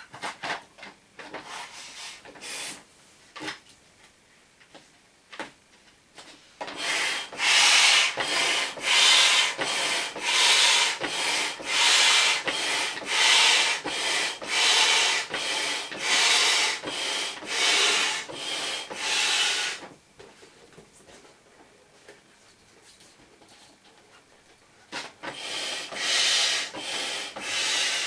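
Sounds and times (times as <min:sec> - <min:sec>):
air pump hissing strokes: 0:01.4 - 0:02.8, 0:06.6 - 0:19.9, 0:25.0 - 0:28.0.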